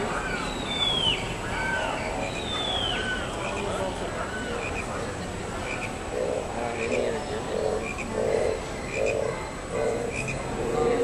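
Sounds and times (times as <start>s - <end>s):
frogs croaking: 0.0s - 11.0s.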